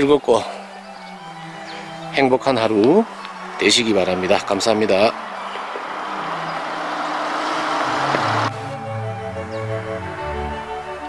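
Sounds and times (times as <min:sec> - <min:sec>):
background music: 0:00.0 - 0:11.0
steady rushing noise: 0:01.2 - 0:08.6.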